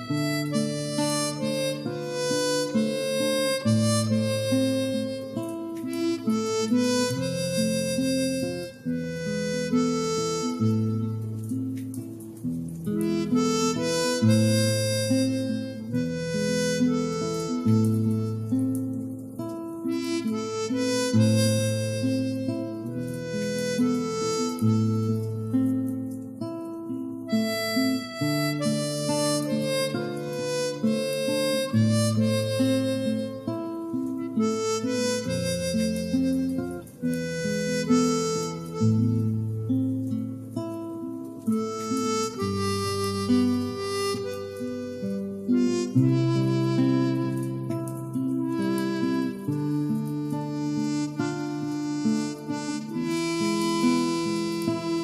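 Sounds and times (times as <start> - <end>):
harmonica melody: 0.0 - 55.0
instrumental accompaniment: 0.0 - 55.0.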